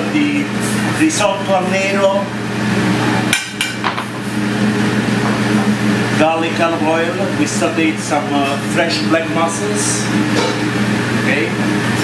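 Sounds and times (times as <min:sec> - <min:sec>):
kitchen equipment drone: 0:00.0 - 0:12.0.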